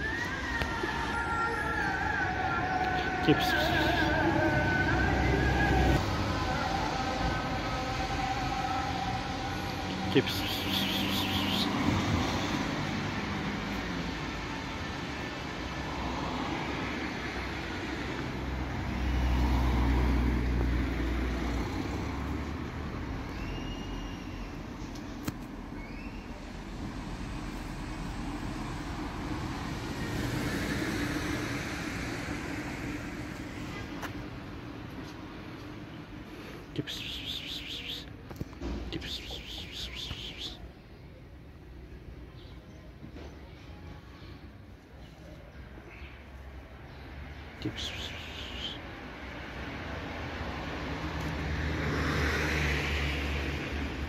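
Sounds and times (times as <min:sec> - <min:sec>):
road traffic rumble: 0:00.0 - 0:54.0
vehicle passing by: 0:01.8 - 0:24.8, 0:25.5 - 0:40.6, 0:46.6 - 0:54.0.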